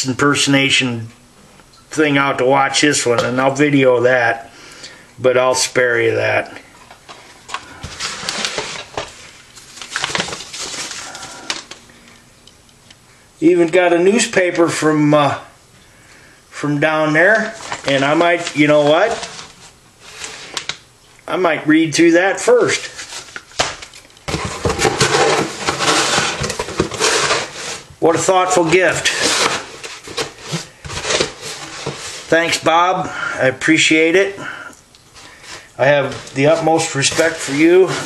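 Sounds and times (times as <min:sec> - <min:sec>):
newspaper rustling and crackling: 0:06.9 - 0:11.8, 0:17.2 - 0:20.8, 0:22.4 - 0:32.7, 0:35.2 - 0:38.0.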